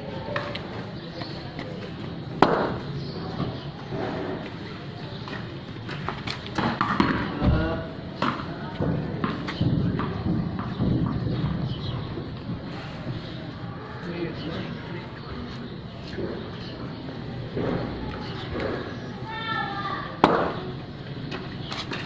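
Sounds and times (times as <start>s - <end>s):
ball knocking on ground and bat: 2.4s - 2.8s, 6.0s - 7.6s, 20.2s - 20.6s.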